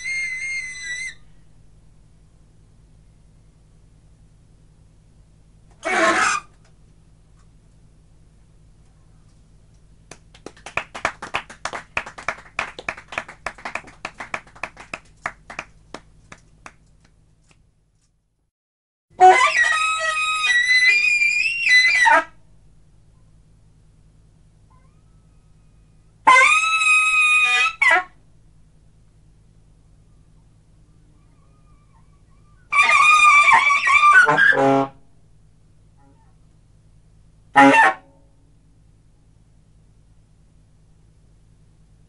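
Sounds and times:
faint steady hum: 0.0 - 18.5, 19.1 - 42.0
audience applause: 10.1 - 16.8.

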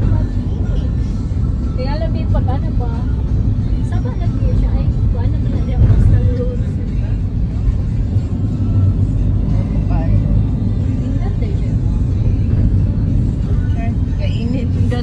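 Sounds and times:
road and engine rumble in vehicle: 0.0 - 15.0.

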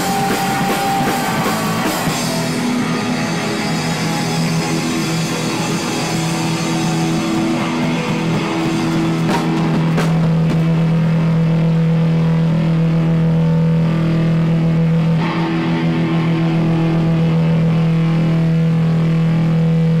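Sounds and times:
drumming: 0.0 - 11.2
distorted guitar and bass chord: 0.0 - 20.0.

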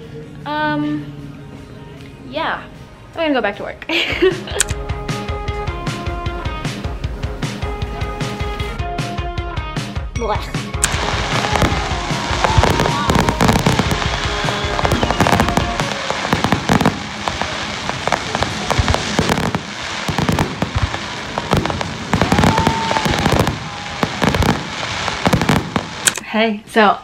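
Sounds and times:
people's voices: 10.4 - 27.0
fireworks banging and crackling: 10.8 - 26.2.

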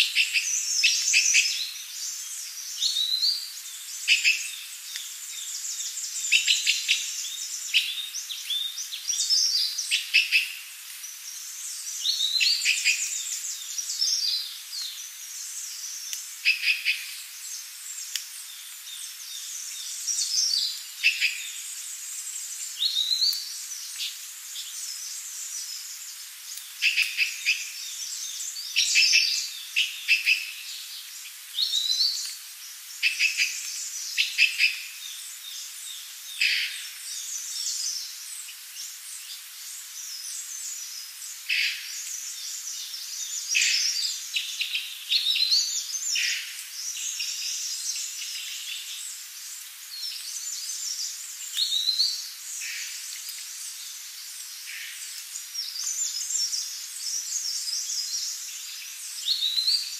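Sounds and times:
faint steady hiss: 0.0 - 59.9.

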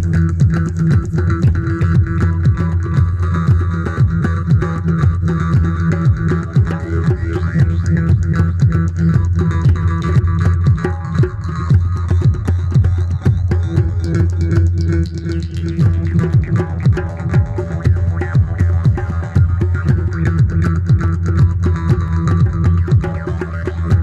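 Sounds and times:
djembe hand drumming: 0.0 - 24.0
jaw harp drone: 0.0 - 24.0.

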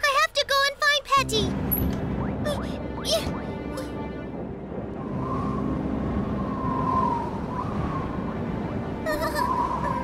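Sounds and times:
steady low rumble: 1.4 - 10.0
howling wind whistle: 4.4 - 10.0.

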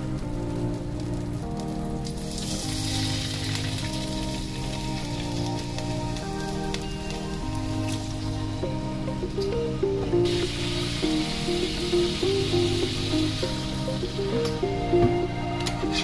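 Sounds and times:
background music of held chords: 0.0 - 16.0.

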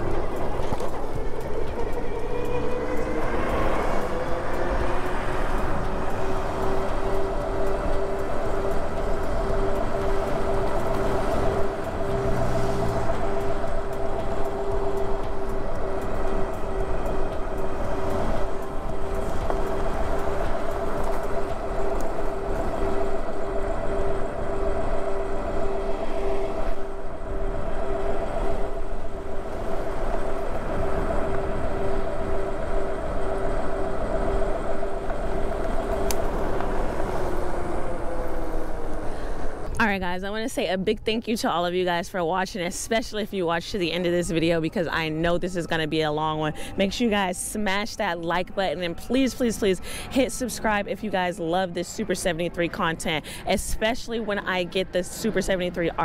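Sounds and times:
wind noise on microphone: 0.0 - 56.0.

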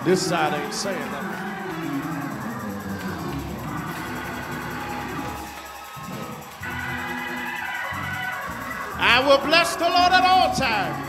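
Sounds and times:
organ-like keyboard chords: 0.0 - 11.0.

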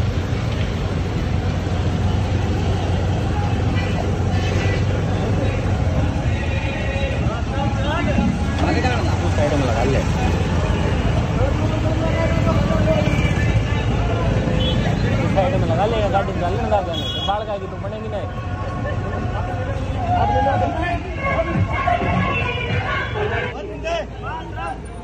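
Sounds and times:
motorcycle engines rumbling: 0.0 - 25.0
people talking and calling out: 1.6 - 25.0.

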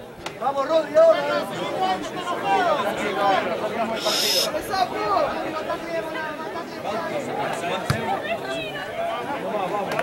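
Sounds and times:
spectators chattering: 0.0 - 10.0
short hiss: 4.0 - 4.5.

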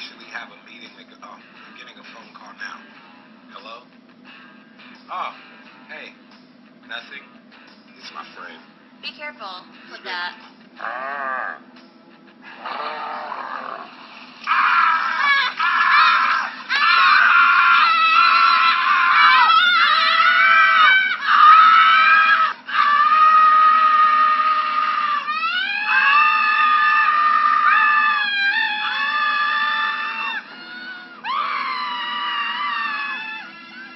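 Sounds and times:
people screaming: 12.6 - 33.9.

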